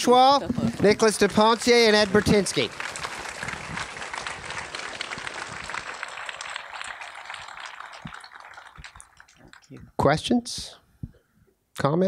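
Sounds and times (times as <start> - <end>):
audience applauding: 0.6 - 9.8.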